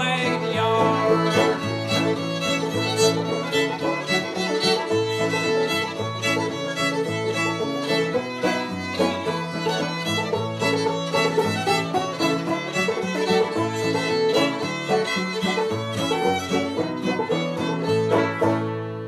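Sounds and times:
acoustic guitar: 0.0s - 19.0s
banjo: 0.0s - 19.0s
fiddle: 0.0s - 19.0s.

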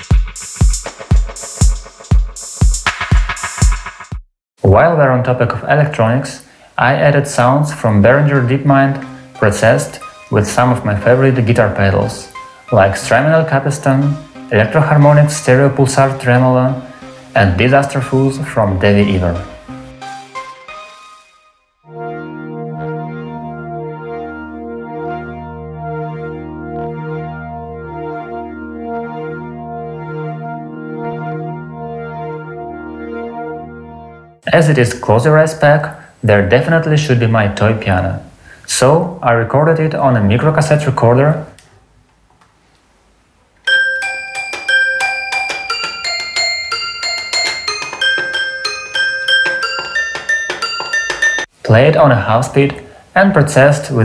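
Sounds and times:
synth chord over low drone: 21.9s - 34.4s
toy piano notes: 43.7s - 51.5s.

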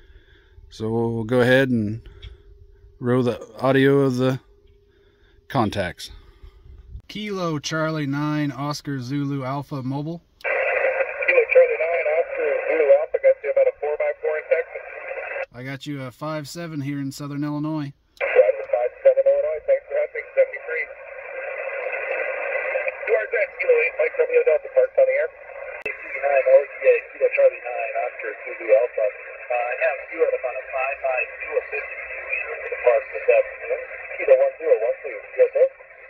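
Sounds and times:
radio band hiss: 10.4s - 15.5s, 18.2s - 36.0s
thin narrow radio speech: 10.4s - 15.5s, 18.2s - 36.0s.

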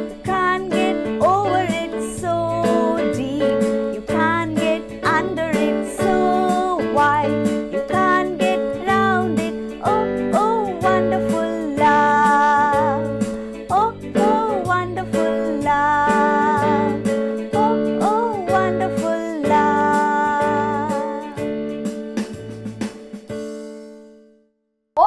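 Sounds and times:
woman singing: 0.0s - 21.4s
instrumental accompaniment with bass beat: 0.0s - 24.2s.

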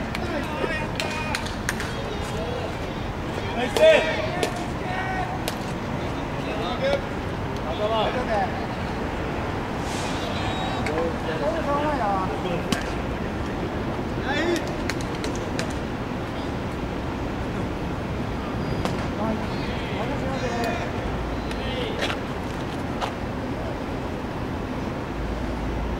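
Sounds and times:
players shouting and chattering: 0.0s - 25.8s
distant traffic: 0.0s - 25.9s
wind hiss: 8.4s - 14.5s.

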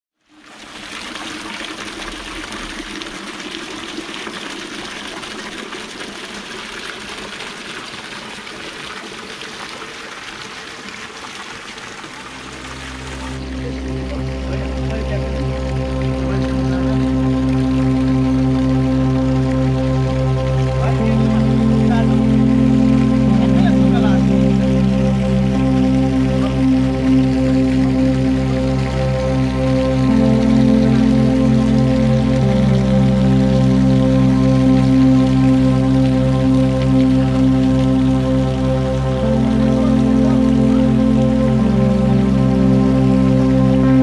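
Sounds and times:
ambient music with held tones: 0.2s - 9.5s, 10.3s - 44.0s.

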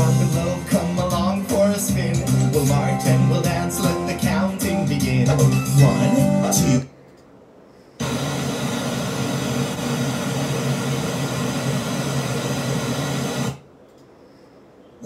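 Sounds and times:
tv static hiss: 8.0s - 13.7s.

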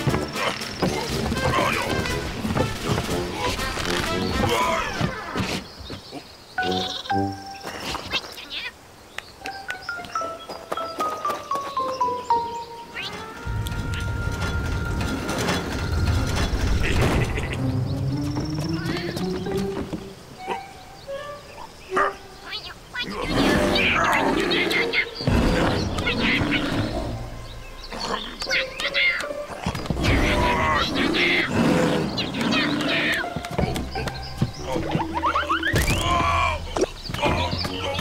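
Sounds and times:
cartoon background music: 0.0s - 5.6s, 6.6s - 7.9s, 9.5s - 38.0s.

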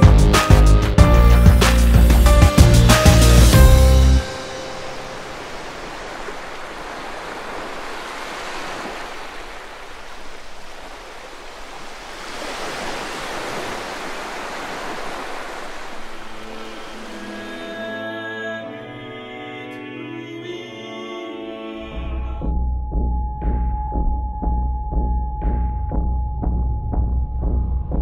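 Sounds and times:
soft music: 0.0s - 5.8s, 15.5s - 28.0s
sea surf washing on shore: 3.0s - 18.4s.

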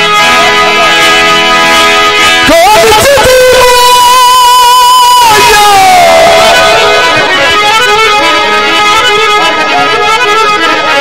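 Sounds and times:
harmonium playing folk song: 0.0s - 11.0s.

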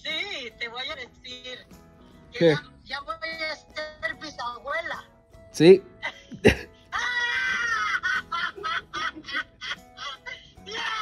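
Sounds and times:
woman laughing: 6.0s - 11.0s
woman squealing: 7.0s - 8.0s.

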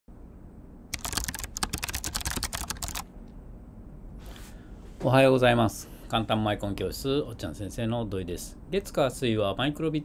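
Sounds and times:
quick run of sharp clicks: 0.9s - 3.1s.

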